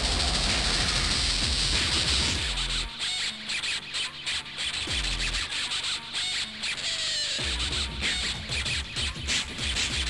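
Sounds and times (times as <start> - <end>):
deep bass drum hit dropping in pitch: 0.0 - 2.4
distorted noisy electronic beats: 0.0 - 3.0.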